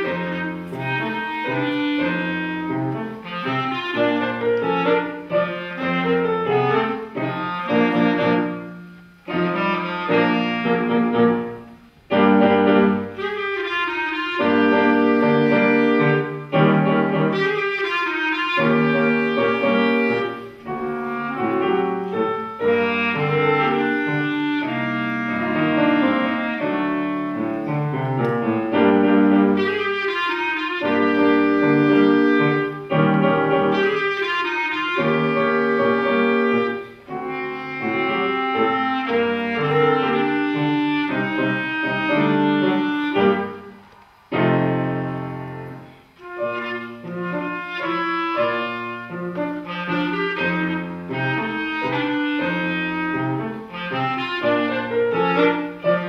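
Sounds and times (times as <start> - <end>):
clarinet playing tango melody: 0.0 - 56.0
piano accompaniment: 0.0 - 56.0.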